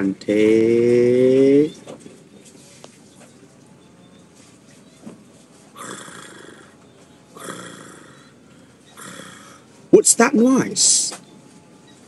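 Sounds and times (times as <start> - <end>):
person snoring: 5.8 - 6.8, 7.4 - 8.3, 9.0 - 9.7.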